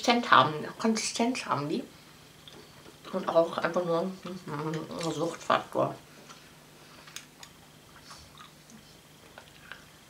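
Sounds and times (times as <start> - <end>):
person chewing sweets: 7.2 - 10.0.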